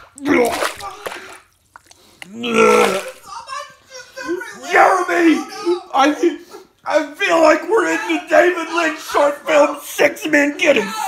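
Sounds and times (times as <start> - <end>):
man retching: 2.2 - 3.2.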